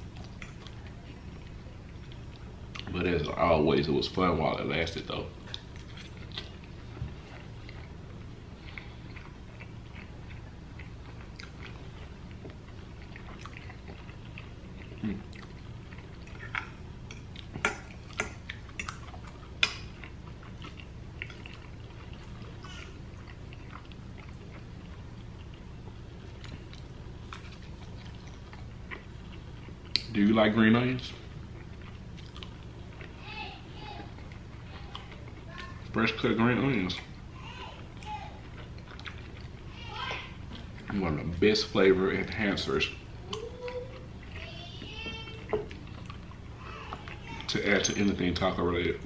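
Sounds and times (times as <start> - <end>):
person chewing soft food: 0.0 - 49.0
steady low hum: 0.0 - 49.0.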